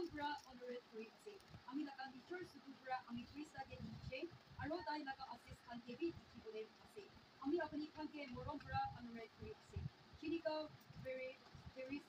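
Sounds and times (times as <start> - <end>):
faint person reading aloud: 0.0 - 12.0.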